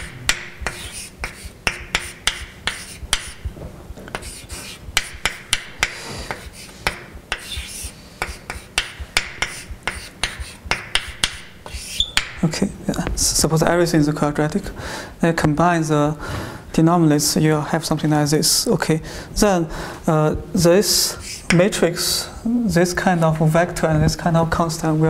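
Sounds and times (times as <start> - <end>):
chalk scratching strokes: 0.0 - 12.5, 22.9 - 23.6
chalk tapping on blackboard: 0.0 - 12.5, 21.5 - 21.7.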